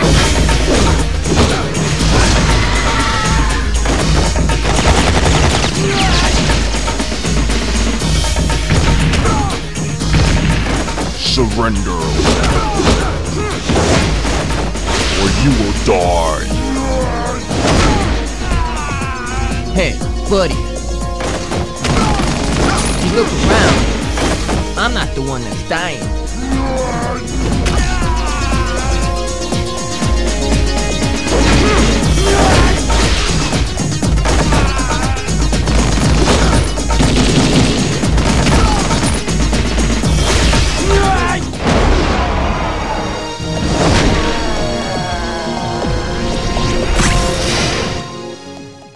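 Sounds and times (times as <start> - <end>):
action music score: 0.0 - 48.9.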